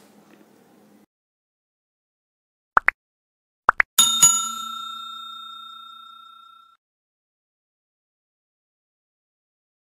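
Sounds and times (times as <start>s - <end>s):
bell-like ding: 4.0s - 6.8s.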